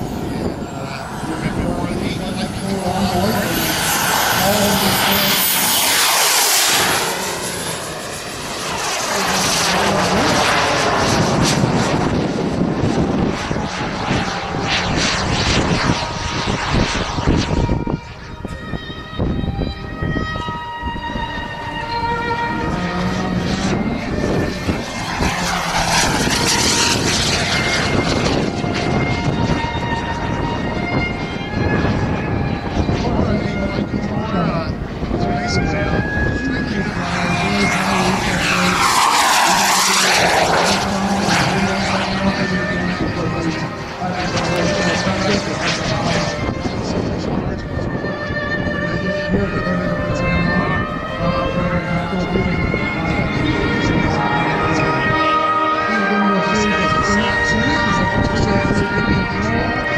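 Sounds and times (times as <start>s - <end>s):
model jet turbine whine: 0.0s - 59.9s.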